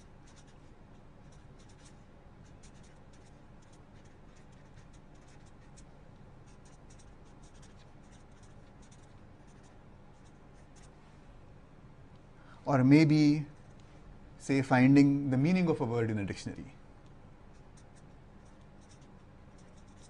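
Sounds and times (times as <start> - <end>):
marker pen writing on paper: 0.0 - 10.9, 17.5 - 20.0.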